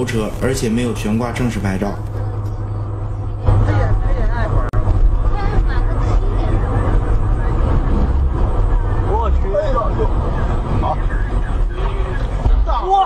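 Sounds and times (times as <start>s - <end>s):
car cabin road and engine rumble: 0.0s - 13.0s
people talking: 0.0s - 13.0s.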